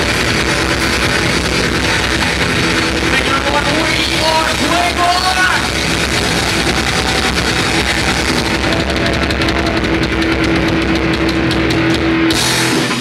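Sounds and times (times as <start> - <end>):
distorted electric guitars: 0.0 - 13.0
drum kit: 0.0 - 13.0.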